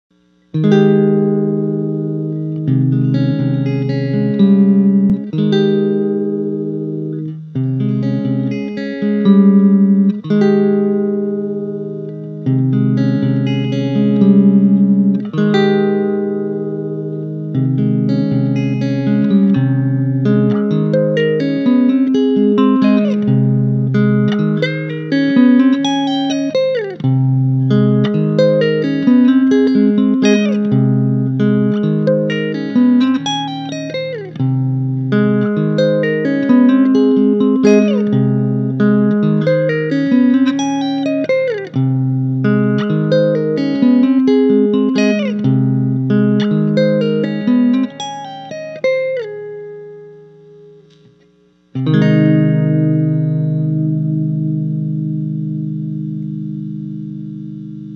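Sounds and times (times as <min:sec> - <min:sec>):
electric guitar arpeggiated chords: 0:00.5 - 0:51.1, 0:51.7 - 0:57.9.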